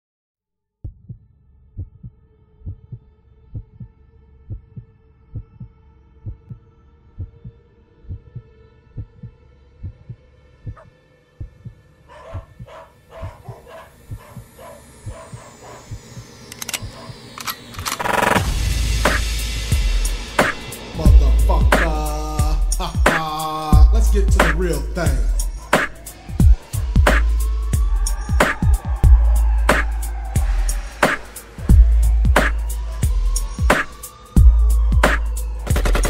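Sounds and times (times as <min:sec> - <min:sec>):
faint synth drone: 0:12.7 - 0:23.0, 0:23.7 - 0:36.0
rising high synth tones: 0:13.5 - 0:36.0
electronic dance music: 0:14.1 - 0:17.4, 0:18.0 - 0:36.0.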